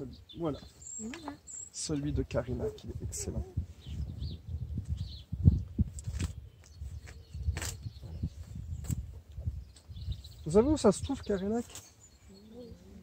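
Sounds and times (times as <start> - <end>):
faint bird chirps: 0.0 - 13.0
wind buffeting microphone: 2.0 - 11.6
twigs clicking and rustling: 6.0 - 7.9.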